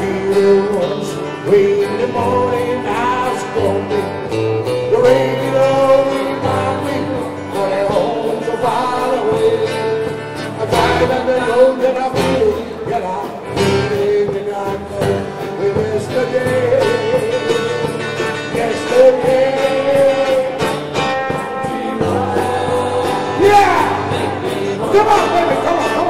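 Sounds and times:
drum kit: 0.0 - 26.0
live band music: 0.0 - 26.0
people singing: 0.0 - 26.0.

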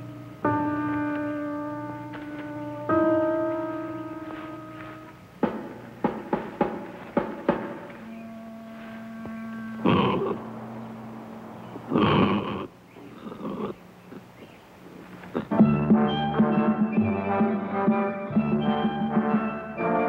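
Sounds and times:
sharp knocks: 5.4 - 8.2
bell-like music notes: 7.9 - 11.9
held tone: 8.0 - 11.9
rough growls: 9.8 - 10.5, 11.8 - 15.6.

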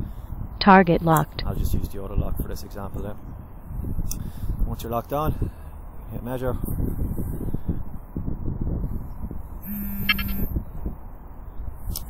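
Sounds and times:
low wind rumble on microphone: 0.0 - 0.6, 1.3 - 9.7, 10.4 - 12.0
short electronic beep: 9.6 - 10.5.

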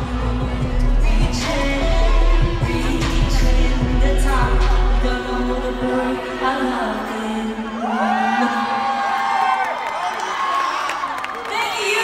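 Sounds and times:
heavy bass: 0.0 - 7.8
band and synth backing: 0.0 - 8.0
woman singing pop song: 0.0 - 9.4, 11.4 - 12.0.

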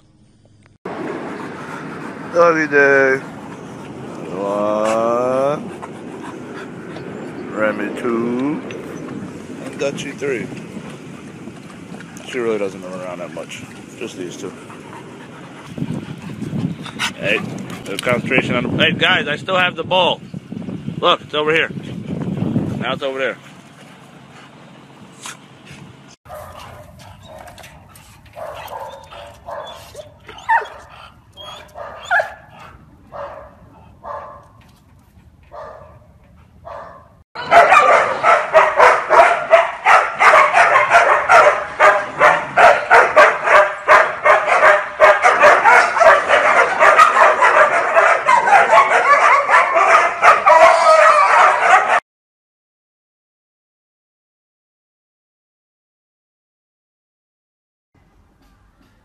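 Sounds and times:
dogs barking and yipping: 3.2 - 8.0, 8.6 - 18.4, 26.3 - 34.6, 35.2 - 52.0.

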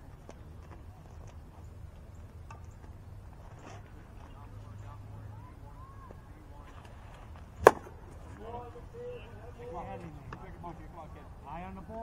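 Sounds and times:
faint field background: 0.0 - 12.0
baseball bat cracking ball: 7.6 - 8.0.

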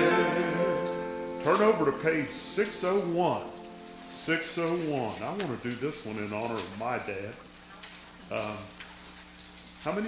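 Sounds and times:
man speaking into a microphone: 4.1 - 7.4.

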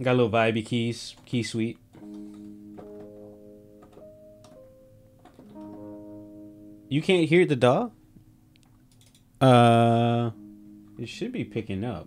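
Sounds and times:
soft electric keys chords: 0.0 - 12.0.

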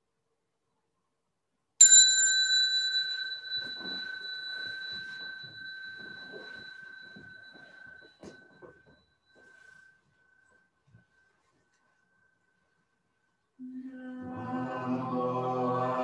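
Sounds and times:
meditation bell ringing: 1.8 - 10.5
faint rustling: 3.2 - 13.3.

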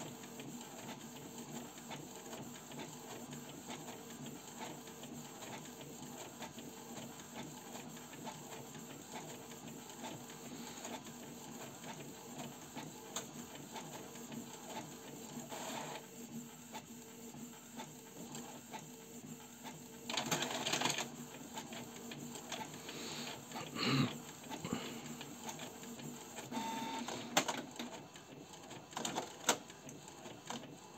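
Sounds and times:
inkjet printer humming and clicking: 0.0 - 30.9.

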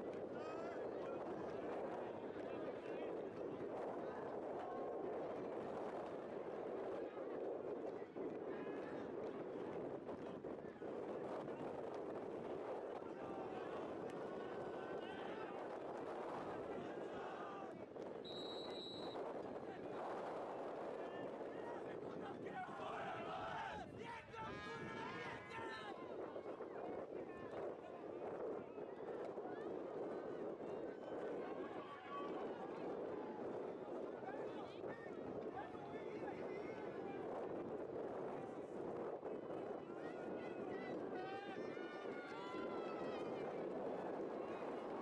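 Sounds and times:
murmur of distant voices: 0.0 - 45.0.

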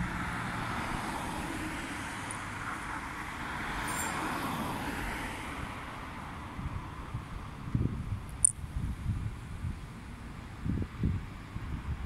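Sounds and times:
faint street noise: 0.0 - 12.0
wind buffeting microphone: 6.4 - 12.0.

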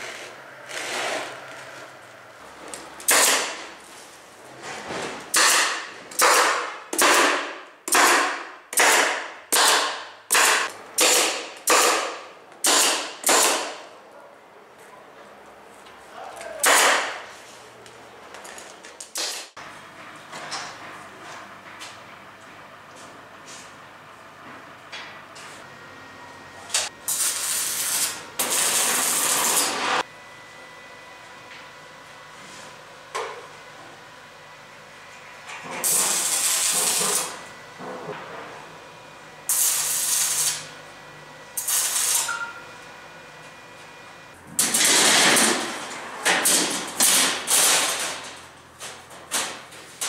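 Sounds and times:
electric arc welding: 27.0 - 30.0, 35.8 - 37.4, 39.5 - 40.7, 41.6 - 42.3, 44.6 - 45.7, 46.5 - 48.2.

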